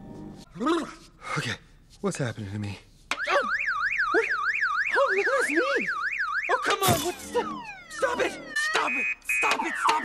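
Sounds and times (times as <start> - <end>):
car alarm siren warbling: 3.2 - 10.0.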